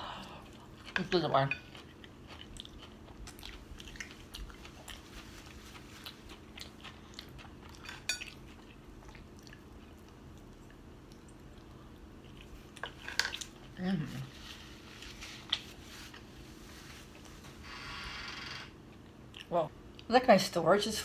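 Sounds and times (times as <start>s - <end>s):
person chewing food: 0.1s - 17.4s.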